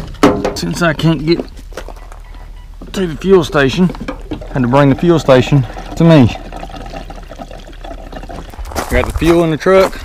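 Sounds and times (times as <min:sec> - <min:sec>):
fuel pouring into a tank: 0:03.6 - 0:08.9.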